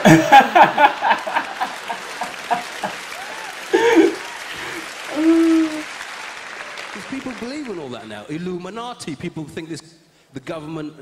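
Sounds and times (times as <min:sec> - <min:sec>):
man laughing: 0:00.0 - 0:03.0, 0:03.7 - 0:04.3
audience laughing: 0:00.0 - 0:05.3
audience applauding: 0:00.0 - 0:08.4.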